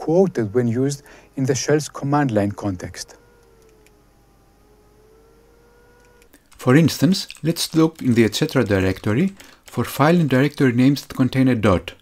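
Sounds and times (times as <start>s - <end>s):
faint wavering hum: 0.0s - 10.9s
low hiss: 0.0s - 12.0s.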